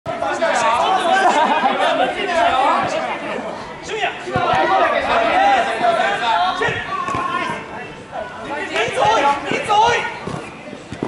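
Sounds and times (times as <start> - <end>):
people chattering and calling out: 0.1 - 11.0.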